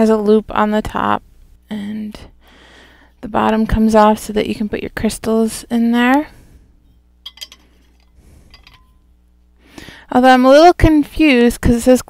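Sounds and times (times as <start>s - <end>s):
glass bottle clinks: 7.2s - 9.0s.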